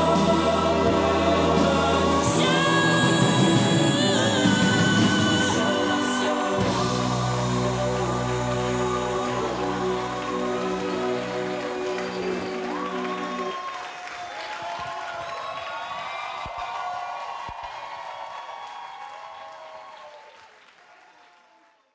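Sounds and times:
audience applause and cheering: 0.0 - 21.9.

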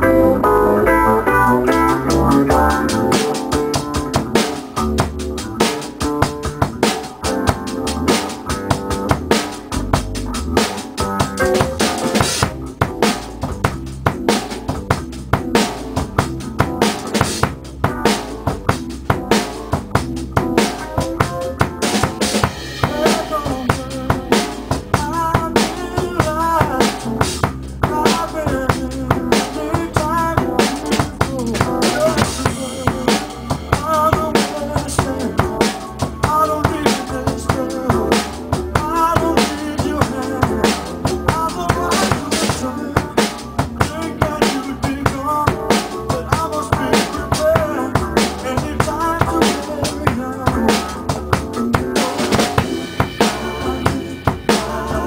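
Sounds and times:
drum kit playing a groove: 0.0 - 55.0
recorded soft-rock song: 0.0 - 55.0.

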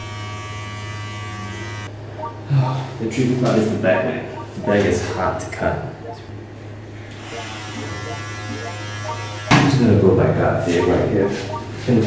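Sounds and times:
electric hair trimmer buzzing: 0.0 - 1.9, 7.2 - 9.5.

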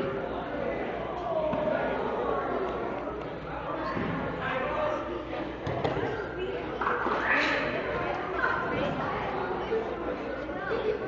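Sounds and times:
children and adults chattering: 0.0 - 11.0.

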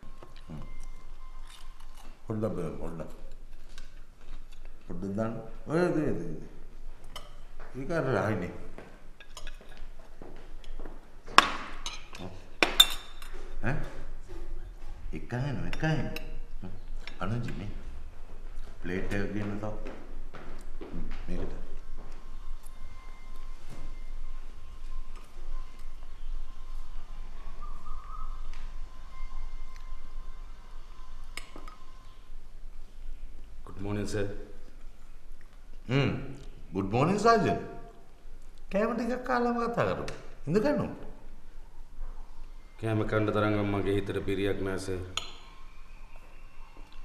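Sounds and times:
faint steady tone: 0.0 - 3.2, 21.0 - 36.3
cutlery clinking on china plates: 11.8 - 13.4.

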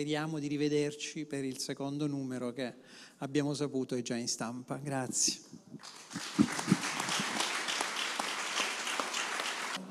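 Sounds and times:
audience clapping: 5.8 - 9.9.

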